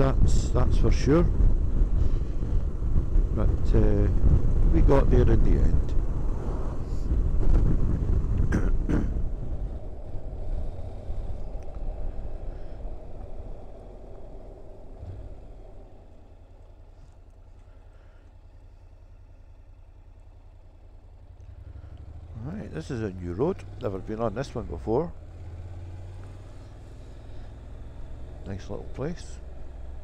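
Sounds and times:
wind rushing over microphone: 0.0 - 16.9
motorcycle engine running: 0.0 - 30.0.

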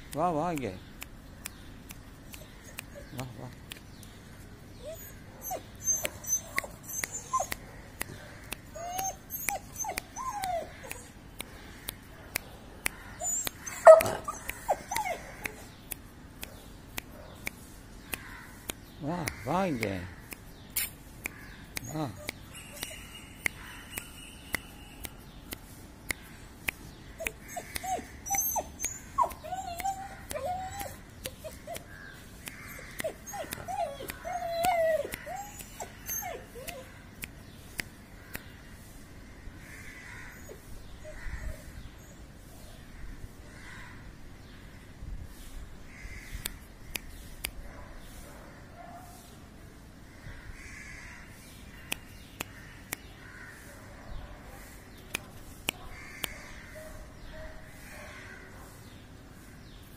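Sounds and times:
sharp little clicks: 0.0 - 4.2, 5.4 - 38.5, 51.6 - 53.2, 55.0 - 56.4
dog whining: 2.2 - 3.2, 4.8 - 7.6, 8.6 - 11.2, 13.2 - 15.7, 21.8 - 23.5, 27.2 - 31.9, 32.6 - 36.9
puppy whimpering: 2.2 - 3.4, 4.8 - 7.6, 8.6 - 11.2, 13.2 - 15.7, 21.8 - 23.5, 27.2 - 31.9, 32.6 - 36.9.

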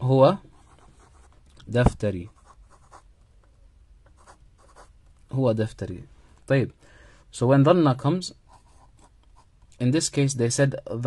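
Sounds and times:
pen scratching on paper: 4.2 - 4.9.

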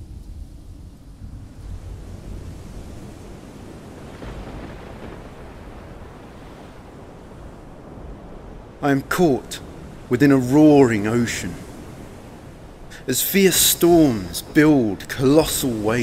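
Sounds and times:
stormy sea waves: 0.0 - 16.0
wind: 0.0 - 16.0.

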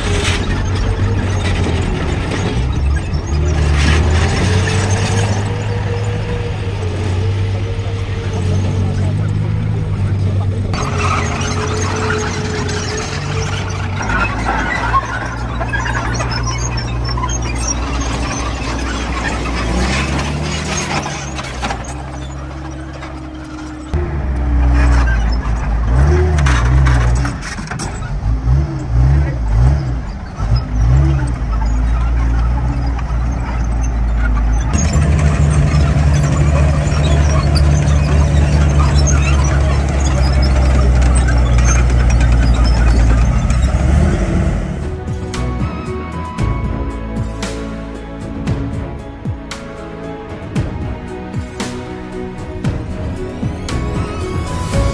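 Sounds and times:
tank engine revving: 0.0 - 54.9
track squeal: 0.0 - 54.9.

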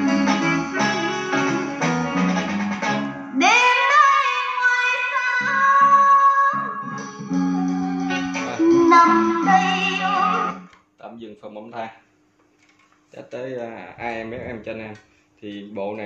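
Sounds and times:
song with singing and guitar: 0.0 - 10.7
man's voice: 8.1 - 8.9, 13.2 - 15.0
person speaking: 13.6 - 16.0.

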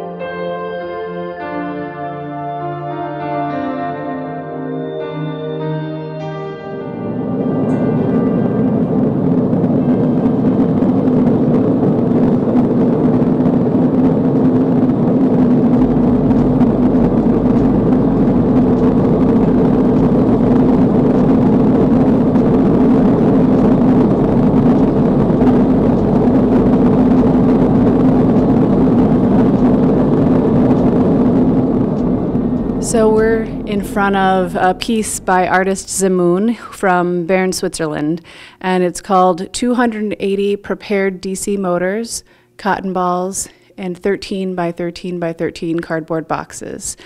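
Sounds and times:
steady motor hum: 7.0 - 36.8.

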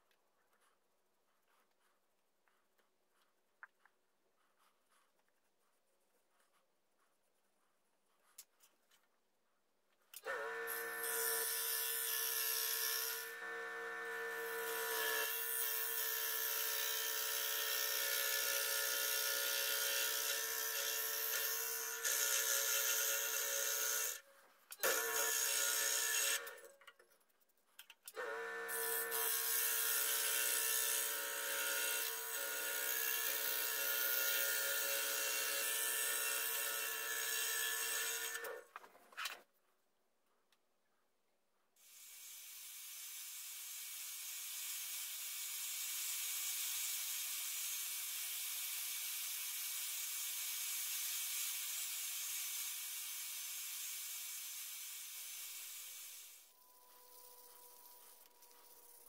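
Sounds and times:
scroll saw cutting wood: 10.2 - 26.8, 28.1 - 39.5, 41.8 - 59.0.

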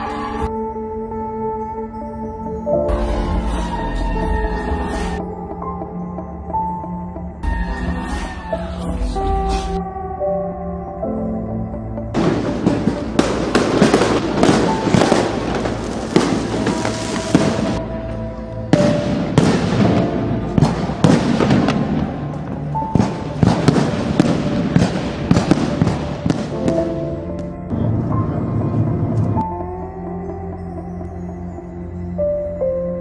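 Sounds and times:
music with sustained tones: 0.0 - 33.0.

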